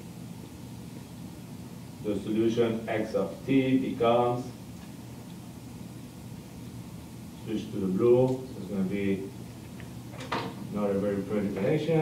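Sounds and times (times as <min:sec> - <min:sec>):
man speaking: 0:02.0 - 0:04.6, 0:07.4 - 0:09.4, 0:10.7 - 0:12.0.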